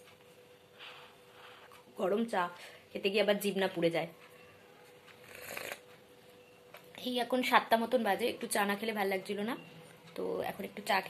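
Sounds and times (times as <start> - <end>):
slurping sip of hot tea: 5.2 - 5.8.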